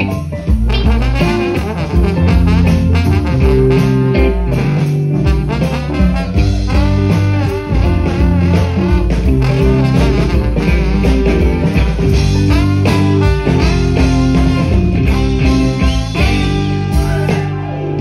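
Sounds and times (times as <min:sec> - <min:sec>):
rock band playing: 0:00.0 - 0:18.0
trombone solo: 0:00.7 - 0:17.5.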